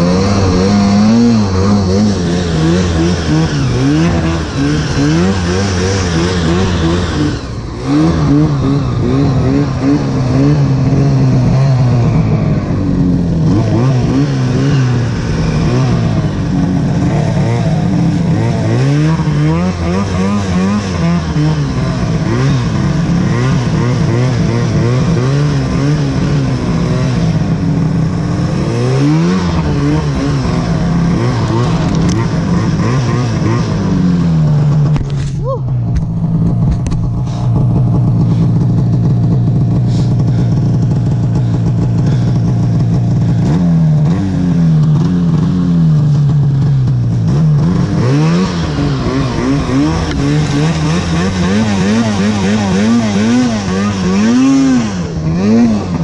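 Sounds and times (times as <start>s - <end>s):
snowmobile engine revving: 0.0s - 56.0s.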